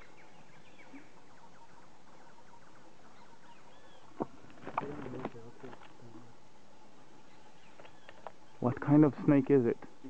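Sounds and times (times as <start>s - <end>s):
birds chirping: 0.0s - 10.0s
steady hiss: 0.0s - 10.0s.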